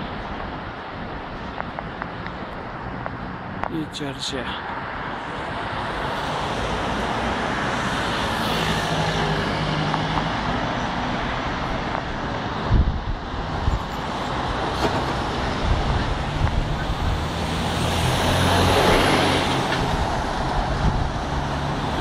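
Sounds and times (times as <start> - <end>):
cars passing on road: 0.0 - 22.0
heavy lorry passing close: 4.9 - 22.0.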